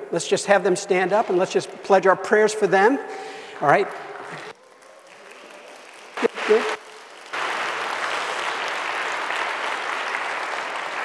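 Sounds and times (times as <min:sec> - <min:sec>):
congregation rustling: 0:00.0 - 0:11.0
light claps: 0:04.5 - 0:11.0.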